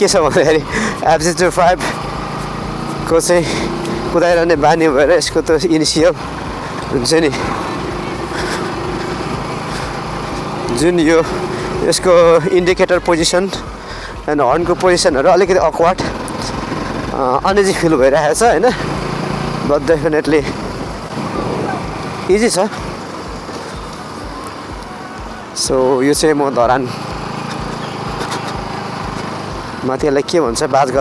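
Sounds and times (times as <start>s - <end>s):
motorcycle engine running: 0.0s - 31.0s
wind on microphone: 20.6s - 21.9s.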